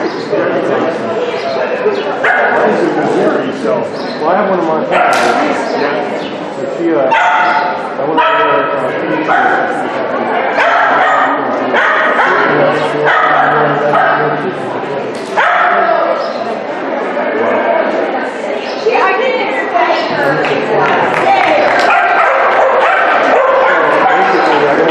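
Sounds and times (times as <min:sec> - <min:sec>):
small dog barking: 0:02.2 - 0:02.6, 0:07.1 - 0:08.7, 0:10.6 - 0:14.3, 0:15.4 - 0:15.9, 0:21.9 - 0:24.4.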